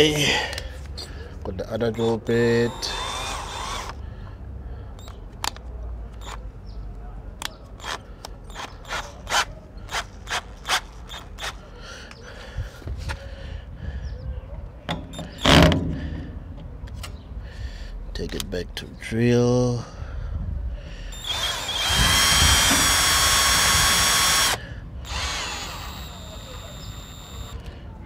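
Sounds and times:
drill chuck rasping: 2.6 - 4.0, 21.1 - 27.7
wind rumble on microphone: 20.0 - 20.8
drill chuck clicking: 21.2 - 27.6.

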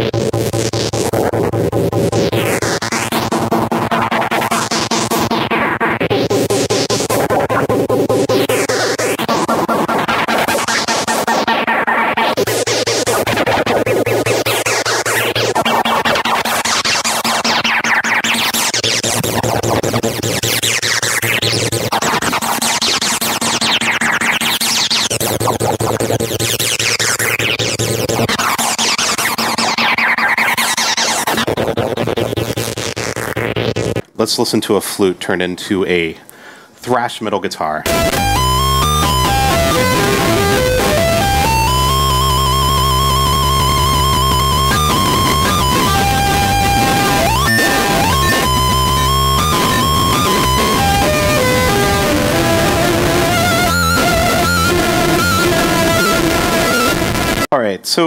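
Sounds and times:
distorted synth bass sequence: 0.0 - 34.0, 37.8 - 57.5
sweeping synth sound: 37.9 - 57.5.

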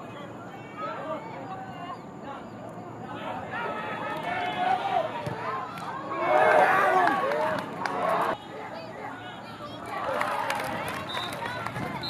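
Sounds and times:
people shouting on a soccer field: 0.0 - 12.0.

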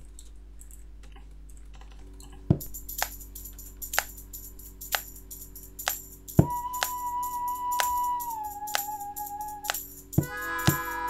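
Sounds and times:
toy shaker rattling: 2.6 - 11.0.

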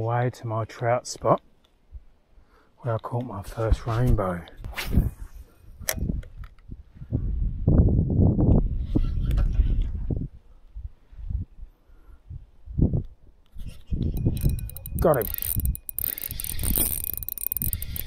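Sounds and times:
wind gusting on microphone: 3.7 - 18.0
sharp click: 14.2 - 18.0.

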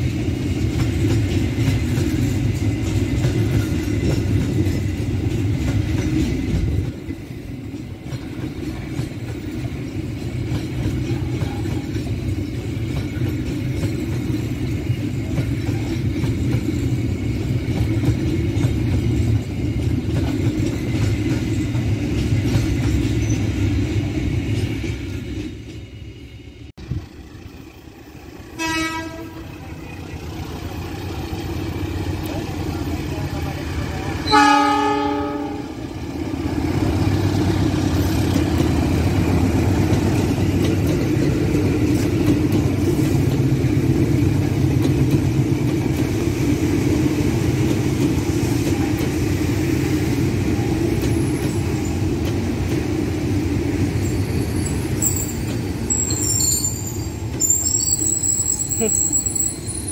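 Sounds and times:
train wheels rumbling on rails: 0.0 - 59.9
train horn blasts: 28.6 - 29.6, 34.2 - 35.8.

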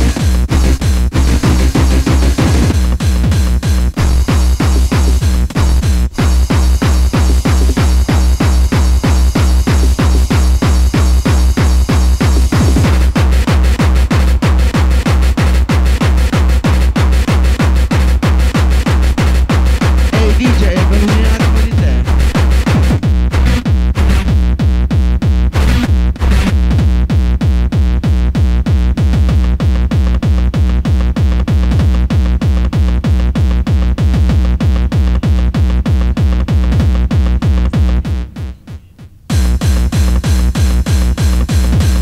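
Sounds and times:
techno dance music: 0.0 - 24.6, 25.4 - 42.0
pounding kick drum: 0.0 - 42.0.

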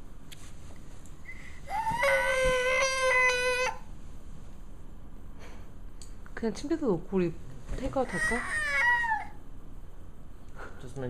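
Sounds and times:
toddler crying out: 1.7 - 3.8, 8.0 - 9.4.

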